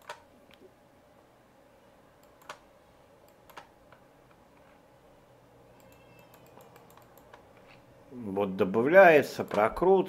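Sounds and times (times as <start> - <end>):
computer mouse clicks: 0.0 - 0.7, 2.2 - 4.8, 5.8 - 7.8.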